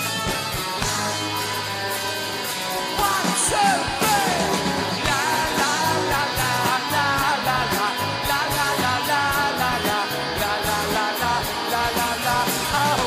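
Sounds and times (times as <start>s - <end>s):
driving cymbal beat: 0.0s - 13.0s
rock band playing live: 0.0s - 13.0s.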